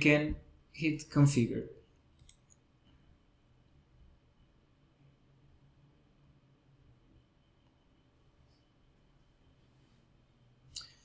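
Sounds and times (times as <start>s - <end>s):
computer mouse click: 2.2s - 2.6s.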